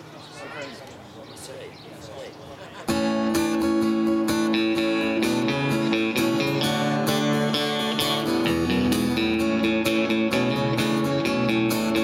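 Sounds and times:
people talking: 0:00.0 - 0:03.0
acoustic guitar strumming: 0:02.9 - 0:12.0.

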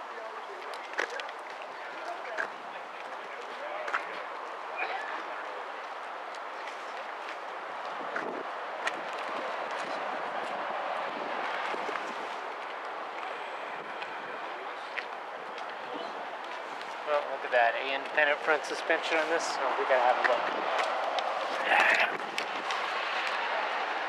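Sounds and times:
indistinct voices: 0:21.2 - 0:22.2.

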